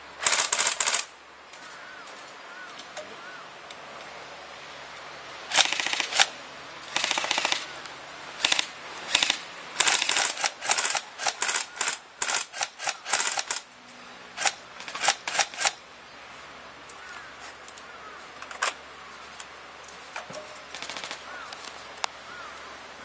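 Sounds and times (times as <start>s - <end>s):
airsoft guns firing bursts: 0.2s - 1.1s, 5.5s - 6.3s, 6.9s - 7.7s, 8.4s - 13.6s, 14.4s - 15.8s, 20.7s - 21.3s.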